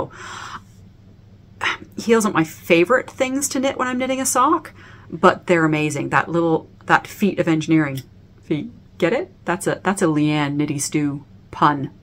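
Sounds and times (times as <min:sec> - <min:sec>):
woman inhaling: 0:00.0 - 0:00.8, 0:04.7 - 0:05.1
woman speaking: 0:01.6 - 0:12.0.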